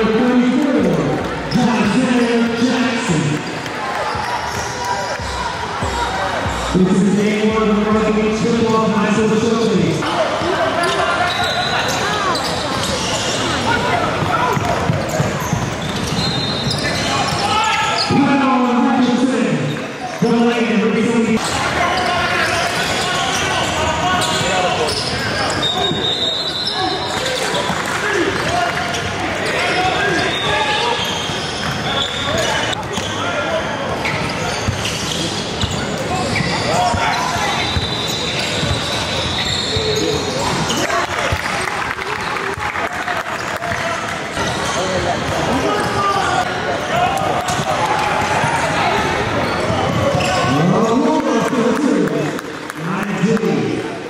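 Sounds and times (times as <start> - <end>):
sneaker squeaks: 0.8 - 6.8, 10.4 - 18.4, 21.4 - 27.8, 28.4 - 41.7, 44.3 - 47.6, 48.2 - 51.0.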